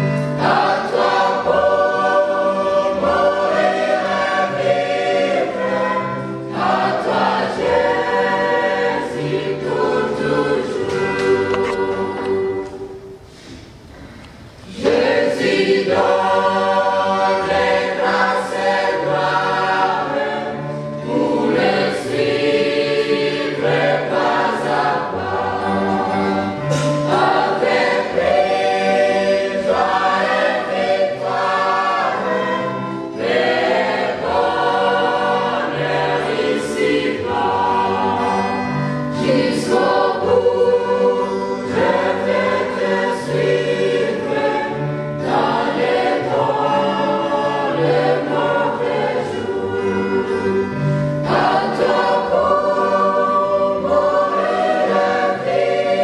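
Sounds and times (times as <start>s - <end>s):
mixed choir singing a hymn: 0.0s - 13.6s, 14.6s - 56.0s.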